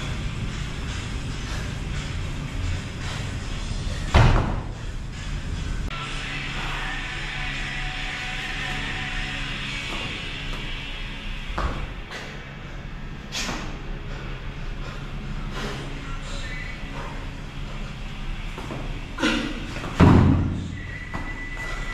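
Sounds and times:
background music: 0.0s - 21.9s.

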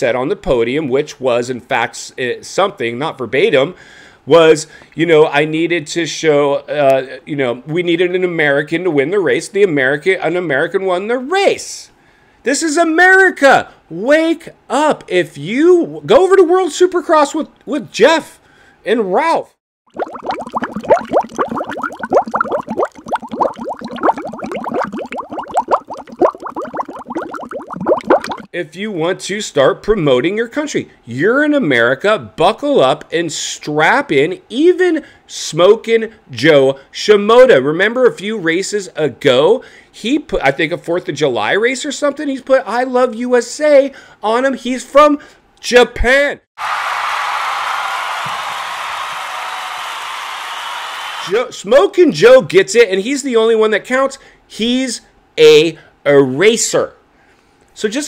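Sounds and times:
large crowd cheering: 46.6s - 51.4s.

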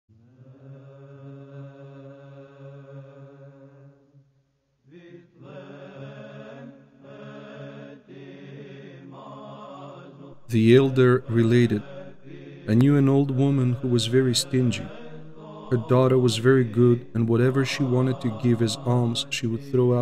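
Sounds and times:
low male voice chanting: 10.4s - 12.0s, 12.6s - 20.0s.

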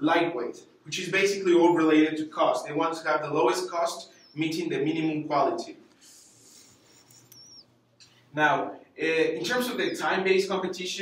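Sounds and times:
faint high squeak: 6.6s - 7.7s.

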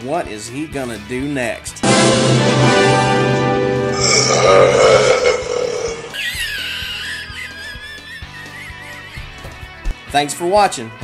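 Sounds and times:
warbling high tone: 1.8s - 6.2s
man's loud vocal outburst: 3.9s - 6.2s.

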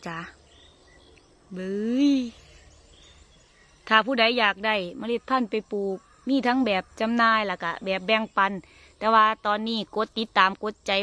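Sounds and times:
faint bird calls: 0.0s - 10.6s.

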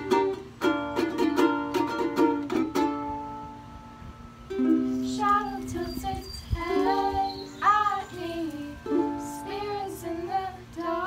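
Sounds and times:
strummed ukulele: 0.0s - 11.0s
girl singing: 4.8s - 11.0s.

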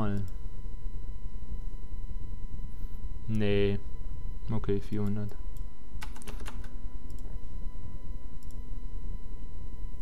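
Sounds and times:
steady low hum: 0.0s - 10.0s
computer keyboard keys tapped: 6.0s - 7.3s.

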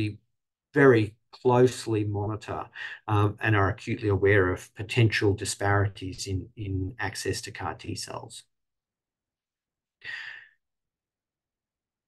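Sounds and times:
man sighing: 10.1s - 10.5s.

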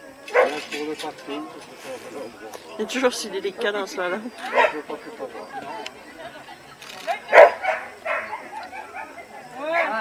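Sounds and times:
dog barking: 0.3s - 0.6s, 4.5s - 4.8s, 7.3s - 9.2s.

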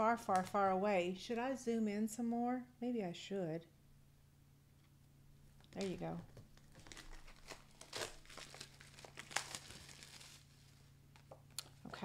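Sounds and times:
plastic wrapper crinkling: 5.6s - 11.8s.

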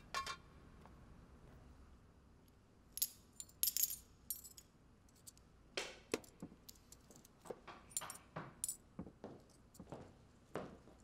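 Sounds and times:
small metal parts clinking: 2.9s - 5.4s.

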